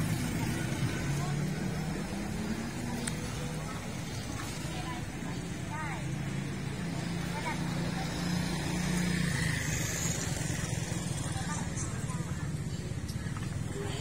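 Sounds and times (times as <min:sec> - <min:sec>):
people chattering: 0:00.0 - 0:14.0
vehicle engine humming: 0:00.0 - 0:14.0.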